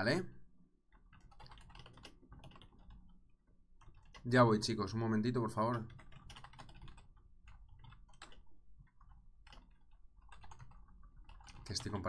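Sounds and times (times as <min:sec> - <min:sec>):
computer keyboard typing: 0:00.9 - 0:12.0.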